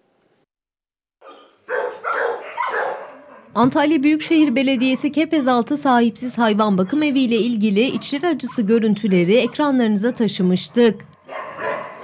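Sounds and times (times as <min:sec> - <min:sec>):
dogs barking in kennels: 0:01.2 - 0:03.7, 0:06.7 - 0:10.5, 0:11.1 - 0:12.0.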